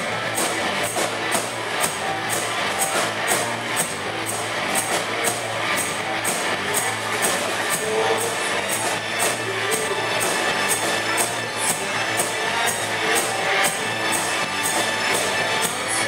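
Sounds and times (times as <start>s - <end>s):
rock band playing: 0.0s - 16.0s.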